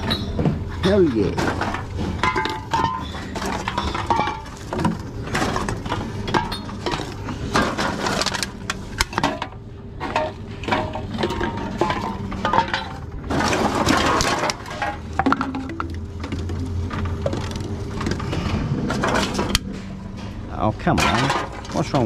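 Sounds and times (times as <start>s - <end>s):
aluminium cans clinking: 0.0s - 18.3s, 21.0s - 22.0s
low machine hum: 0.0s - 22.0s
vending machine rattling and crushing: 0.0s - 22.0s.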